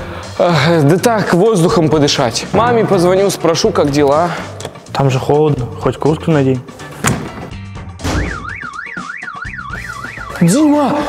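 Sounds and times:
car alarm siren sweeping: 8.0 - 11.0.

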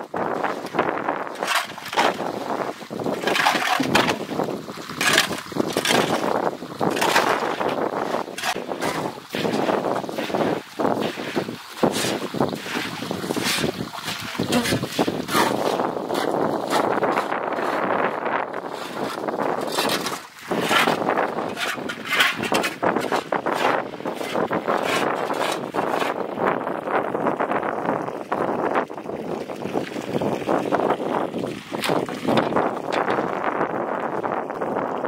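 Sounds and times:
water running on concrete floor: 0.0 - 35.0
broom sweeping through water: 7.5 - 16.9.

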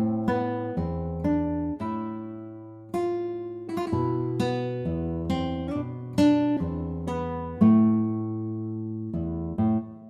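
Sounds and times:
plucked acoustic guitar notes: 0.0 - 10.0.

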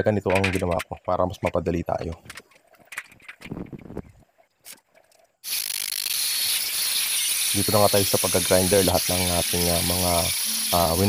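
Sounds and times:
light clicks and knocks: 0.0 - 3.8
angle grinder grinding steel: 5.5 - 11.0.

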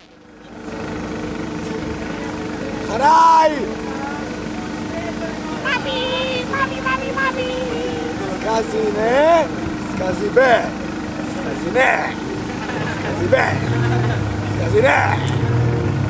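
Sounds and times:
steady droning hum: 0.0 - 16.0.

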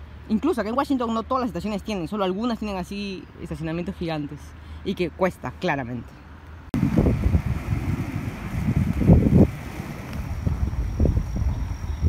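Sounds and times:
street ambience: 0.0 - 12.0
wind buffeting microphone: 6.8 - 12.0.

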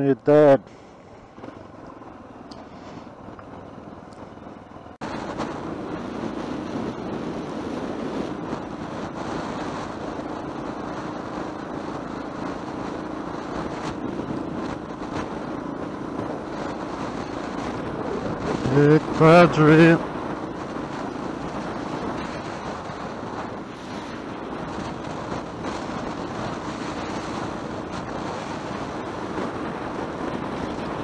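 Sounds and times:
motorcycle engine riding: 0.0 - 31.0
wind noise on microphone: 0.0 - 31.0.

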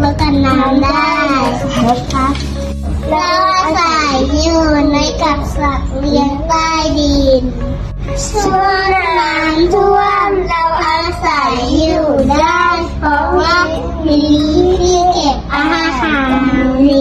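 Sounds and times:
child singing: 0.0 - 2.1, 3.1 - 7.5, 8.2 - 17.0
steady low hum: 0.0 - 17.0.

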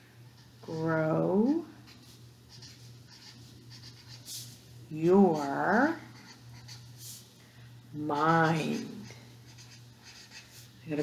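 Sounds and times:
low steady hum: 0.0 - 11.0
felt-tip marker writing on paper: 1.8 - 4.4, 5.3 - 6.9, 8.2 - 10.7.

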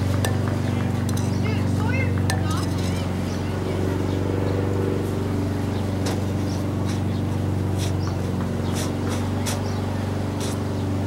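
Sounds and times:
low hum with pitched drone: 0.0 - 11.0.

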